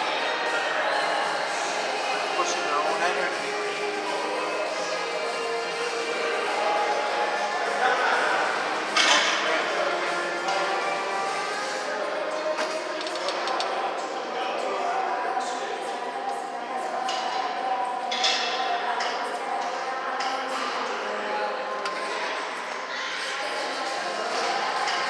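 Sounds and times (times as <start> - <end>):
background music with singing: 0.0 - 25.0.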